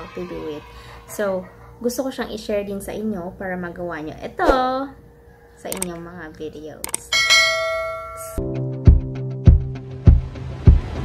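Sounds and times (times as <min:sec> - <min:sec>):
bright bell chime: 0:07.1 - 0:08.4
music with heavy beat: 0:08.9 - 0:11.0.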